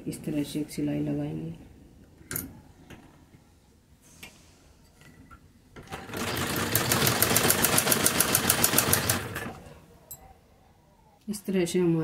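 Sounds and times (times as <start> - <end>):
sewing machine stitching: 5.8 - 9.7.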